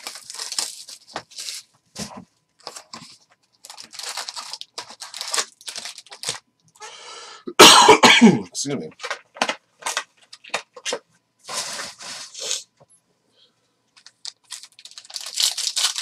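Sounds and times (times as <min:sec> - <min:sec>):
card packs crinkling: 0:00.0 - 0:06.4, 0:08.8 - 0:12.6, 0:14.0 - 0:16.0
person coughing: 0:07.5 - 0:08.5.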